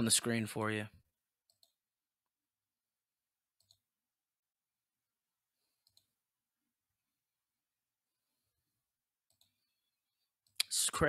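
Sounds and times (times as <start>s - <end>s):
computer mouse clicks: 1.4s - 1.8s, 3.6s - 3.8s, 5.8s - 6.2s, 9.2s - 9.6s.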